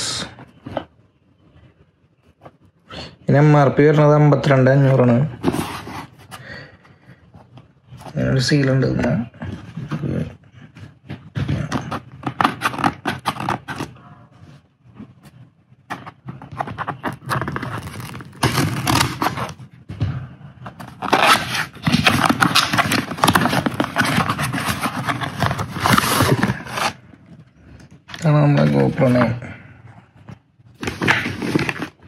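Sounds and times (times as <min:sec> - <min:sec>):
cardboard flaps rubbing: 0:11.2 - 0:14.0, 0:15.9 - 0:19.7, 0:20.7 - 0:27.0
tape tearing on cardboard box: 0:16.6 - 0:19.6, 0:20.9 - 0:27.0.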